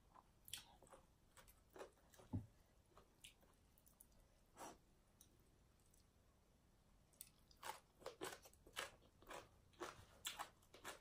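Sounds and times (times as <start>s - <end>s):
crunchy chewing of salad: 0.0s - 2.3s, 7.2s - 11.0s.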